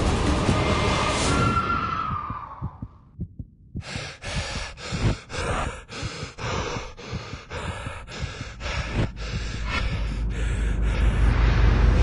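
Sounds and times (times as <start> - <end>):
fast heartbeat-like thumps: 1.9 - 11.2.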